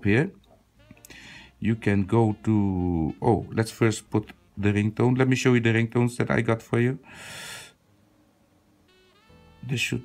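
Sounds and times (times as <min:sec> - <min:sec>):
breathy hiss: 0:07.0 - 0:07.8.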